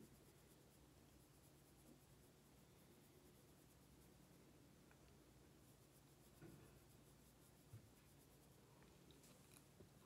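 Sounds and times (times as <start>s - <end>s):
brush scratching on skin: 0.0s - 10.0s.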